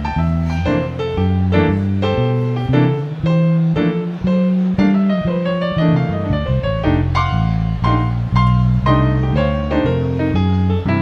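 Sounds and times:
electric keyboard jazz solo: 0.0 - 11.0
plucked electric bass: 0.0 - 11.0.

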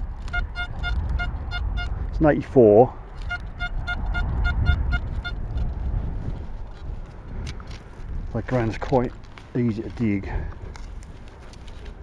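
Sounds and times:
wind rumbling on microphone: 0.0 - 12.0
metal detector beeping: 0.2 - 2.0, 3.2 - 5.5.

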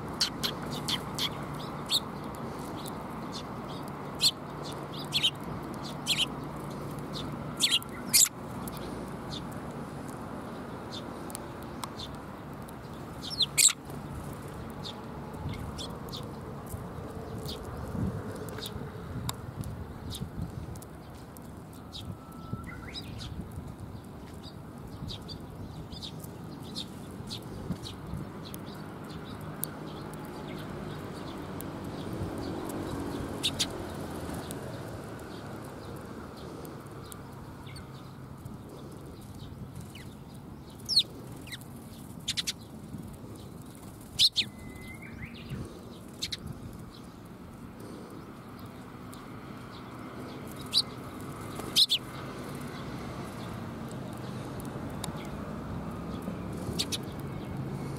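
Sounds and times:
birds chirping and clicking: 0.0 - 57.9.

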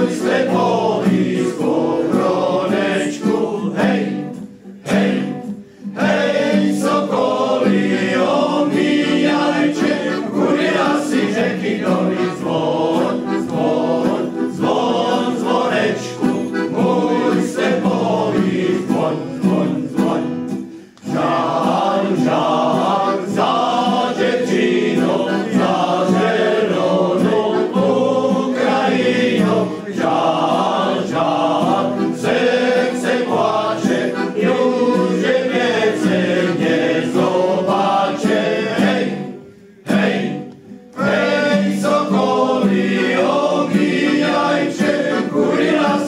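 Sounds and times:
accordion: 0.0 - 46.0
acoustic guitar: 0.0 - 46.0
male choir singing: 0.0 - 46.0.

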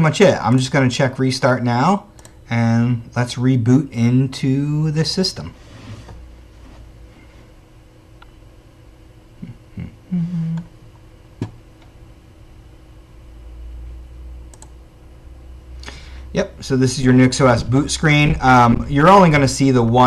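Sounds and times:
man's voice low hum: 0.0 - 5.6, 9.4 - 10.7, 15.7 - 20.0
computer clicks: 14.5 - 14.8.

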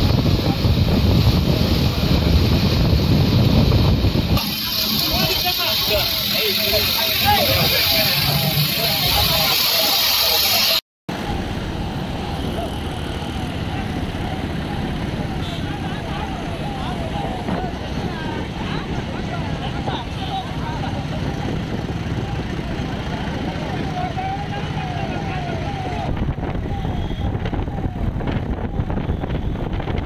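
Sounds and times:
motorcycle and car engines: 0.0 - 30.0.

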